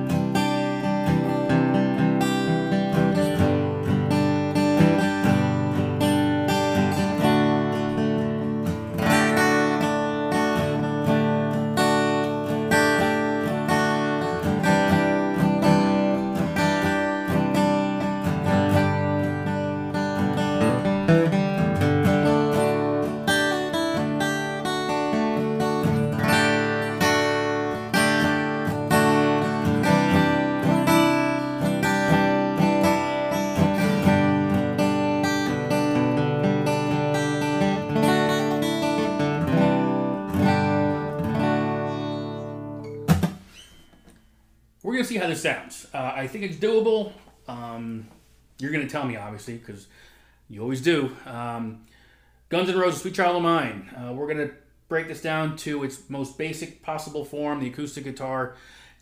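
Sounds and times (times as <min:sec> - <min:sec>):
acoustic guitar strumming: 0:00.0 - 0:49.1.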